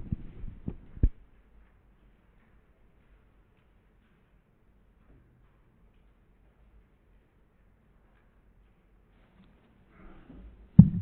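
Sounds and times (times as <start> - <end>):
dull footstep thuds: 10.8 - 11.0.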